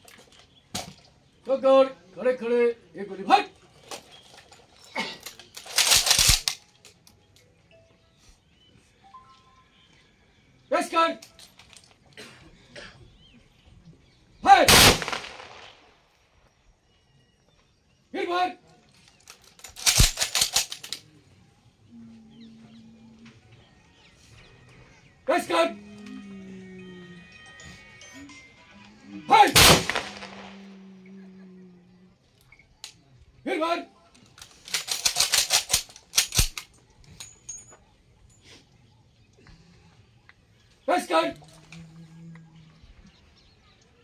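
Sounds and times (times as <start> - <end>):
person shouting command: 14.4 - 14.7
rifle volley with echo: 14.7 - 15.9, 29.5 - 30.8.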